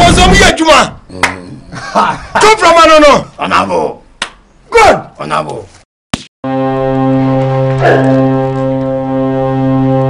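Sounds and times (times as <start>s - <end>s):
sustained organ chord drone: 6.5s - 10.0s.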